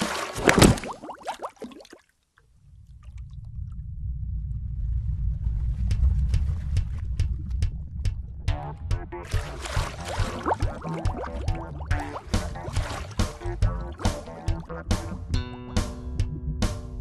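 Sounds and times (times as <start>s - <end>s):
low underwater rumble: 2.5s - 17.0s
cartoon rushing gulp: 9.3s - 15.2s.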